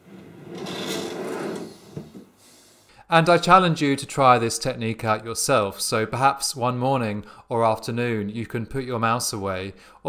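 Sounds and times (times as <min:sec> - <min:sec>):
drawer sliding on metal runners: 0:00.0 - 0:02.4
drawer closing knock: 0:00.5 - 0:02.3.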